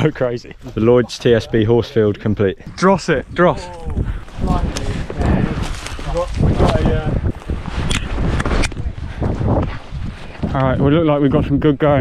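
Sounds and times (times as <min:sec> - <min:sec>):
voices: 0:00.0 - 0:07.3
low wind rumble: 0:01.2 - 0:12.0
microphone handling rustling: 0:02.6 - 0:10.9.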